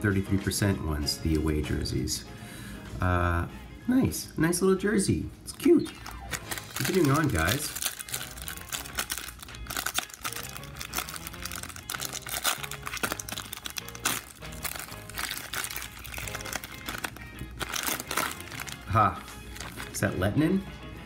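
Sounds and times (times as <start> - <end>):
soft background music: 0.0 - 21.0
foil pack crinkling: 5.5 - 20.1.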